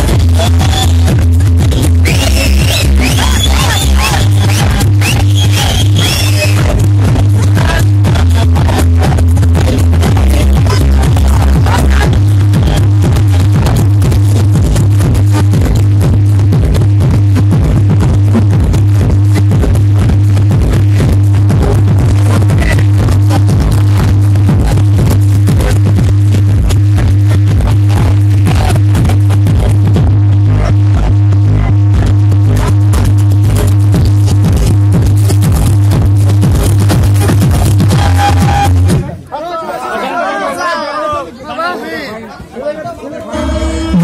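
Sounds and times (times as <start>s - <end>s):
electronic dance music: 0.0s - 44.0s.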